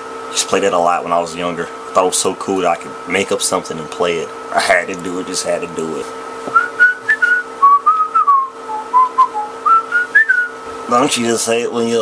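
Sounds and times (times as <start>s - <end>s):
faint steady hum: 0.0s - 12.0s
man whistling a tune: 6.5s - 10.6s.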